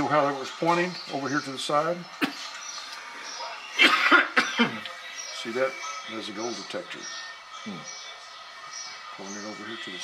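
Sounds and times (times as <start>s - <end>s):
person coughing: 3.8s - 4.8s.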